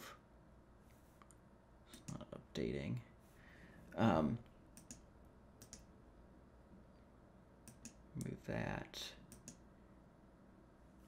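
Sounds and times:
computer mouse click: 4.7 - 5.9, 7.6 - 8.3, 9.3 - 9.6.

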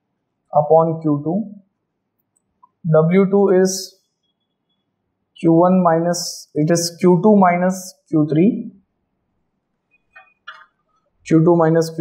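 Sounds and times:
marker squeaking on whiteboard: 4.0 - 5.0, 9.9 - 11.1.

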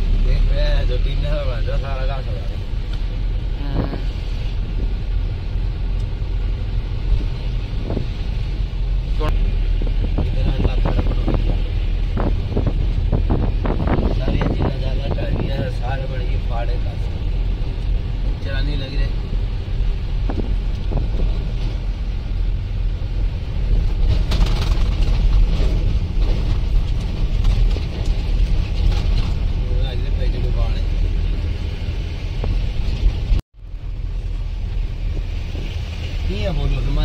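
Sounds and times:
engine and road rumble in a car: 0.0 - 37.0.

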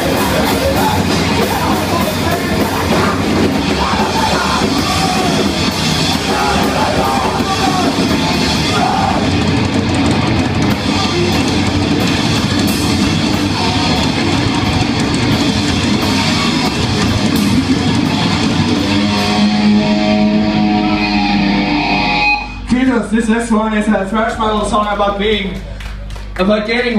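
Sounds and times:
punk band playing: 0.0 - 26.9.

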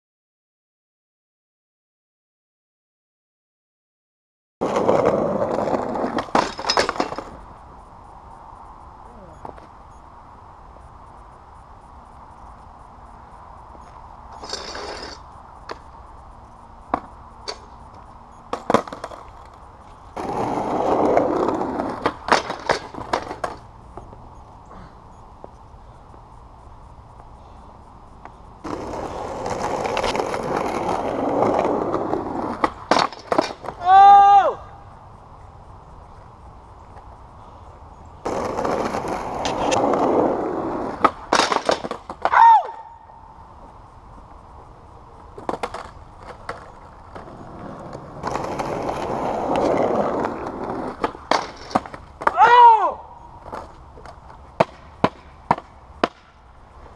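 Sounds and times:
skateboard clacking: 4.6 - 7.6, 14.4 - 16.0, 16.9 - 19.6, 20.2 - 24.2, 28.2 - 34.1, 38.2 - 42.9, 45.2 - 52.8, 53.4 - 56.9
skateboard wheels rolling on asphalt: 4.6 - 56.9.

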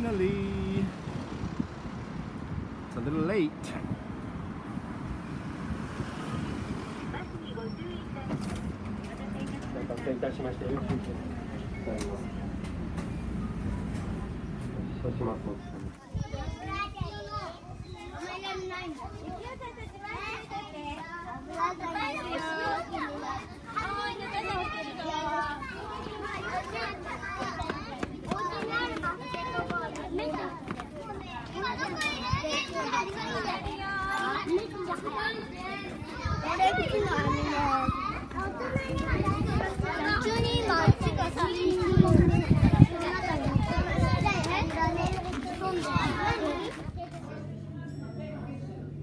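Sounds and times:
young children chattering: 0.0 - 49.0.

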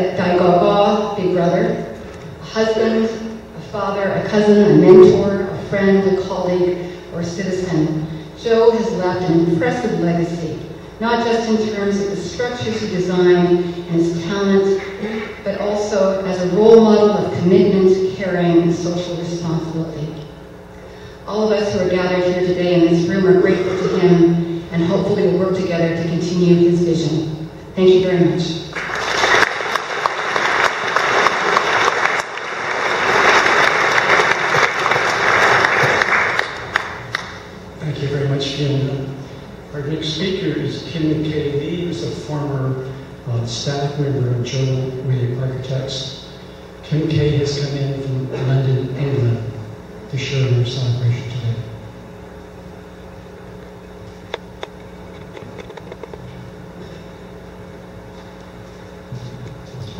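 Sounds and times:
low room hum: 0.0 - 59.9
audience applauding: 28.8 - 37.4.

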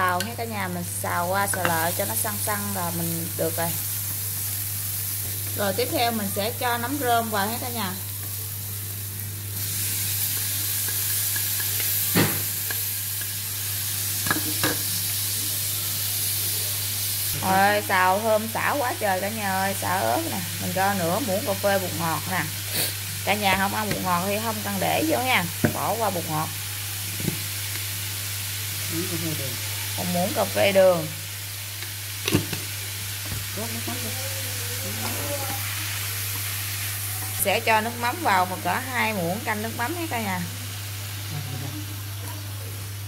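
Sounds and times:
oil sizzling in a wok: 0.0 - 43.0.

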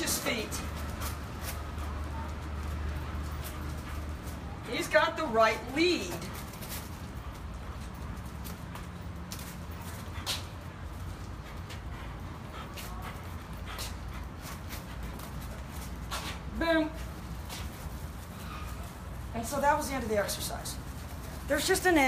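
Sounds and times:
light footsteps: 0.0 - 22.0.

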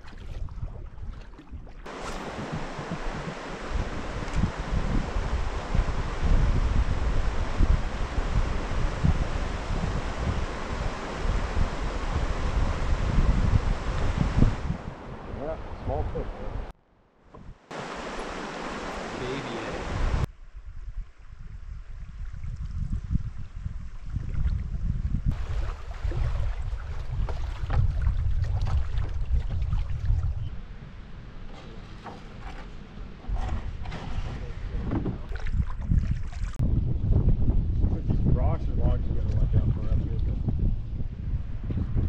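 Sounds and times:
canoe paddling splashes and knocks: 0.0 - 14.8, 25.3 - 30.4, 31.4 - 36.6
wind rumbling on microphone: 0.0 - 16.7, 17.3 - 42.0
water rushing over rapids: 1.9 - 16.7, 17.7 - 20.3.

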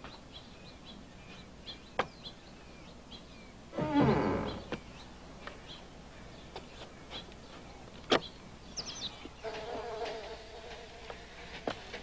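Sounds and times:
fly buzzing: 9.4 - 12.0.

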